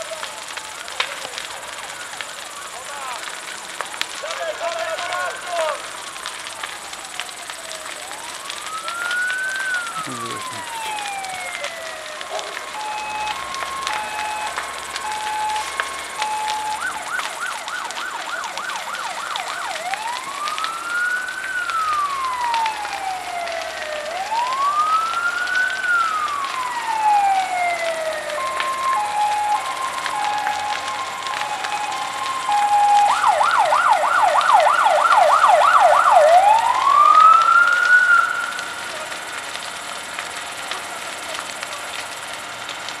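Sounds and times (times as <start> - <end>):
emergency vehicle siren: 0.0 - 43.0.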